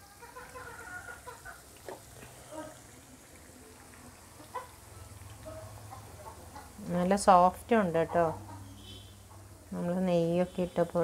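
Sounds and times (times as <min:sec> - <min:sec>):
oil sizzling faintly: 0:00.0 - 0:11.0.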